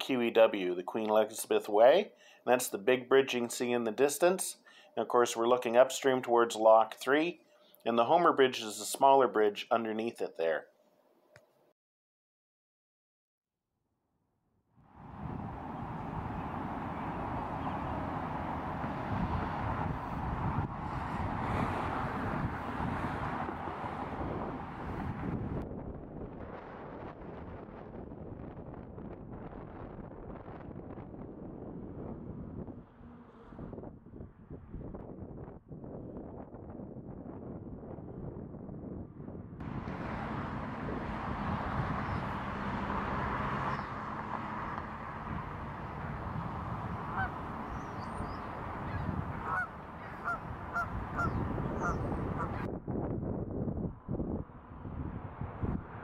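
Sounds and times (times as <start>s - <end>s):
wind noise on microphone: 14.9s - 56.0s
geese honking: 47.1s - 52.7s.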